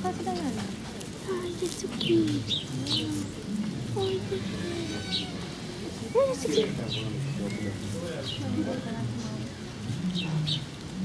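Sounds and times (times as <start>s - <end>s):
lemurs calling: 1.2s - 9.0s.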